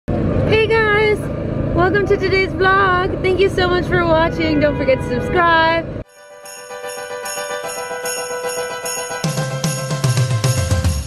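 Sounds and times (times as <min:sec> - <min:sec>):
street traffic rumble: 0:00.1 - 0:06.1.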